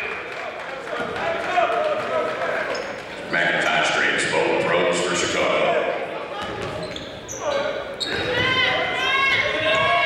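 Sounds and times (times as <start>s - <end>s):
voices calling out in echoing hall: 0.0s - 10.0s.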